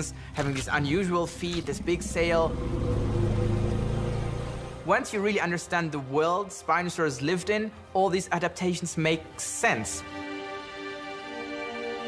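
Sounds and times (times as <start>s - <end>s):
man talking: 0.0s - 2.6s
low droning background score: 0.0s - 6.1s.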